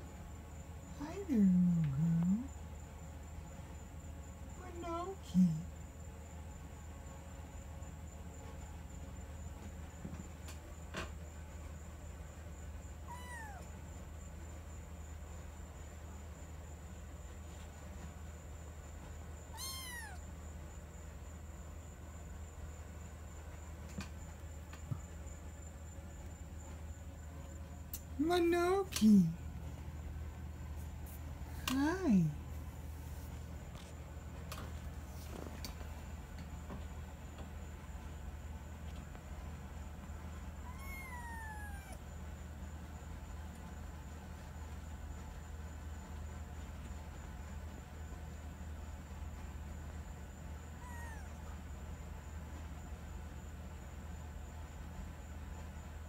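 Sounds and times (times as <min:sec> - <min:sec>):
kitten meowing: 0:13.1 - 0:13.7, 0:19.5 - 0:20.2, 0:40.6 - 0:42.0, 0:50.8 - 0:51.4.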